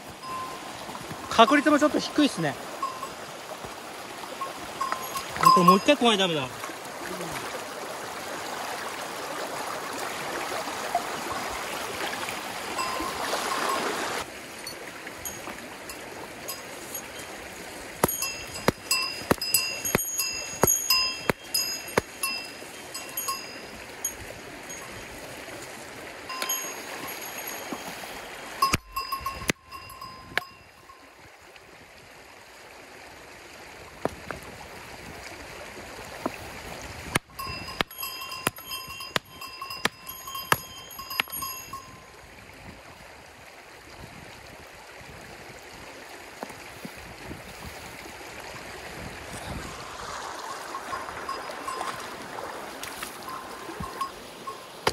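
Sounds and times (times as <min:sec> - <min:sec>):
shallow creek running: 0:00.0 - 0:54.9
hammer striking stones: 0:18.0 - 0:22.2, 0:37.7 - 0:41.4.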